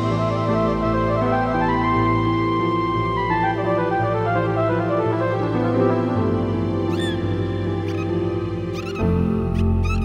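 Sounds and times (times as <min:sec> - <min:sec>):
slow relaxation music: 0:00.0 - 0:10.0
dolphin whistles: 0:06.9 - 0:07.2, 0:07.8 - 0:10.0.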